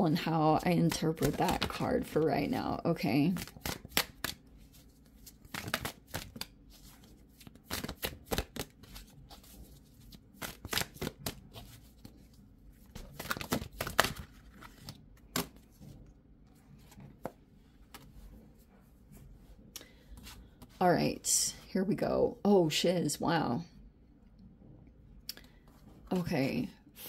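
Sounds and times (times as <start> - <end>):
cards being shuffled: 0.7 - 2.4, 3.2 - 16.0.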